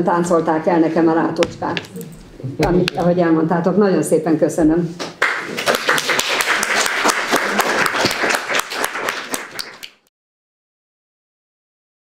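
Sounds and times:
audience applauding: 5.2 - 10.1.

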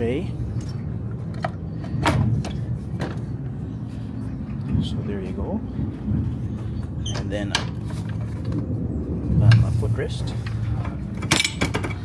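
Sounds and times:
train carriage rumble: 0.0 - 12.0.

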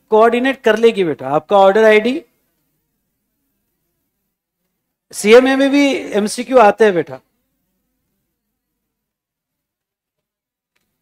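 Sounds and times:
man speaking: 0.1 - 2.3, 5.1 - 7.2.

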